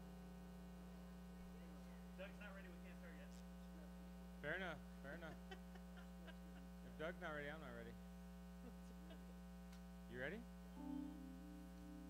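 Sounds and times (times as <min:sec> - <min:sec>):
electrical mains hum: 0:00.0 - 0:12.0
people talking: 0:01.4 - 0:05.5, 0:06.9 - 0:08.0, 0:10.1 - 0:10.4.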